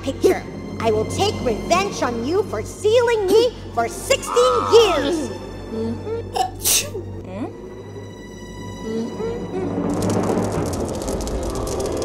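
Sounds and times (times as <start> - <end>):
light background music: 0.0 - 11.7
woman sneezing: 6.3 - 7.0.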